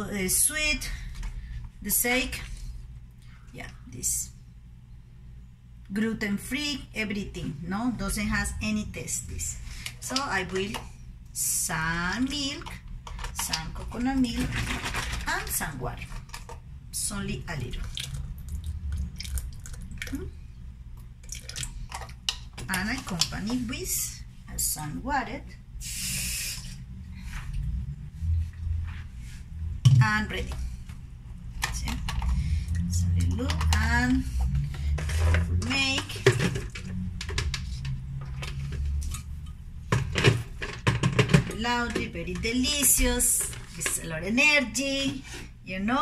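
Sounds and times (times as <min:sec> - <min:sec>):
steady low hum: 0:00.0 - 0:46.0
milk pouring into a glass: 0:17.8 - 0:20.2, 0:21.2 - 0:22.3.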